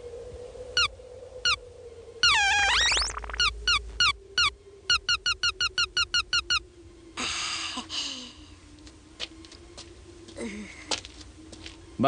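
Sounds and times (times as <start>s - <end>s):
cartoon bird chirping: 2.2s - 6.6s.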